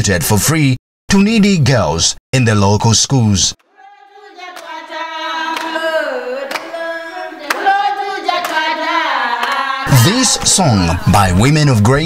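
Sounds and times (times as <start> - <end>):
women singing together: 3.6 - 10.4
hand claps: 5.5 - 5.8, 6.5 - 6.8, 7.4 - 7.8, 8.4 - 8.7, 9.4 - 10.2.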